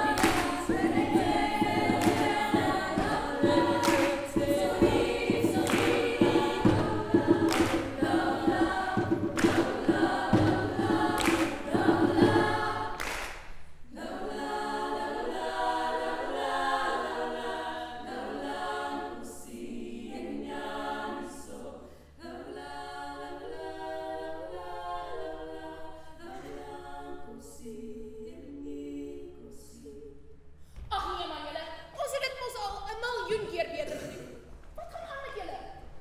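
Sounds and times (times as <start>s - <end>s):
percussive beat: 0.0s - 13.6s
women's choir singing a cappella: 0.0s - 30.6s.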